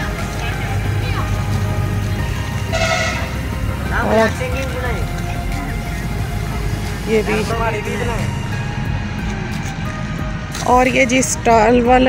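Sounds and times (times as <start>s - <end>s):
crowd rumble outdoors: 0.0s - 12.0s
faint music: 0.0s - 12.0s
person's voice: 3.8s - 6.2s, 7.0s - 8.4s, 10.6s - 12.0s.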